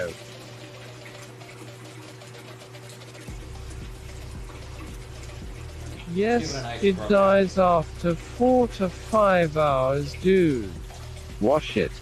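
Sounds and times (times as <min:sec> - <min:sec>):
background music: 0:00.0 - 0:12.0
faucet running into sink: 0:00.0 - 0:12.0
shaker bottle being rinsed: 0:00.0 - 0:12.0.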